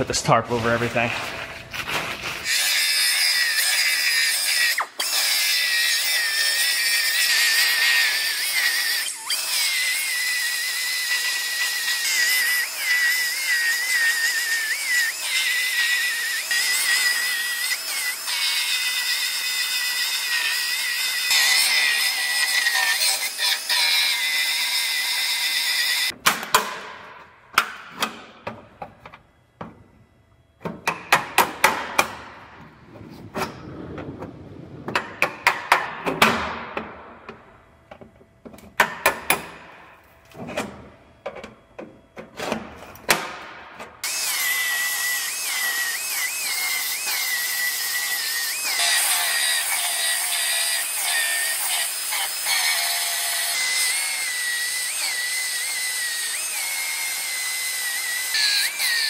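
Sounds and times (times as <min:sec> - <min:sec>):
belt file grinding metal: 0:44.0 - 0:59.0.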